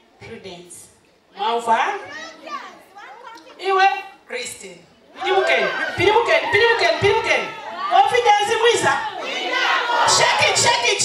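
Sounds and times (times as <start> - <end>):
woman speaking into microphone: 3.1 - 9.1.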